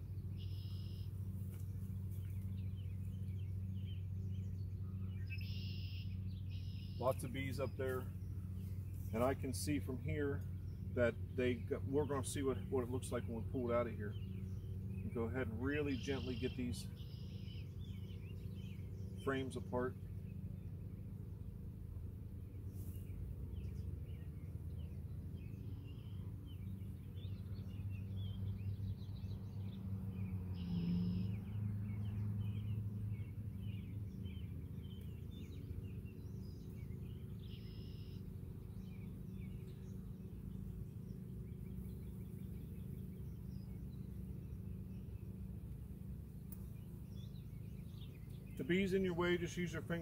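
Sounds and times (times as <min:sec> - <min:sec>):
honeybees humming: 0:00.0 - 0:50.0
small birds chirping: 0:00.0 - 0:50.0.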